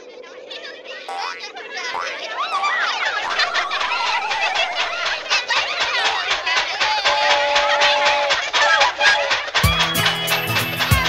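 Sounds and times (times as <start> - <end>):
high-pitched cartoon voices chattering: 0.0 - 9.6
long wavering warble: 1.1 - 6.3.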